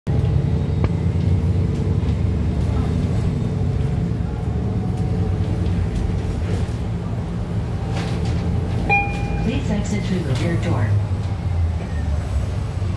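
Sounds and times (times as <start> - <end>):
bus drivetrain and road rumble: 0.1 - 12.9.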